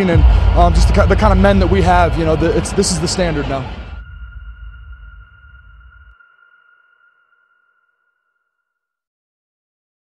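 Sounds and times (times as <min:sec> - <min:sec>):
low rumble: 0:00.2 - 0:06.3
high electronic tone: 0:03.2 - 0:08.6.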